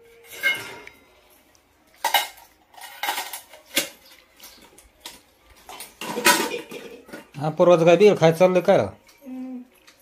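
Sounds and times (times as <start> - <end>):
steel bowls and utensils clanking: 0.0 - 1.3, 1.9 - 7.9.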